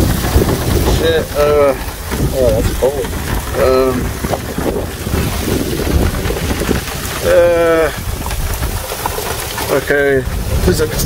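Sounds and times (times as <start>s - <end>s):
rushing hiss of rain: 0.0s - 11.0s
wind buffeting microphone: 0.0s - 11.0s.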